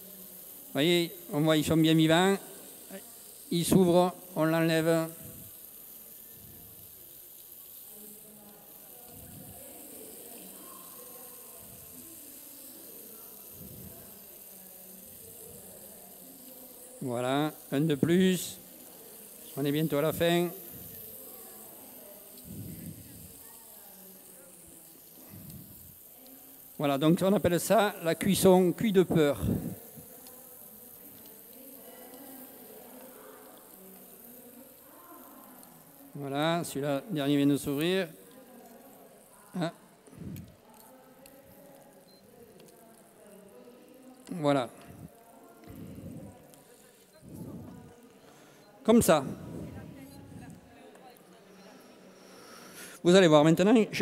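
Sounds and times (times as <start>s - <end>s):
clams sizzling in oil: 0.0s - 53.6s
faint background murmur: 0.0s - 54.0s.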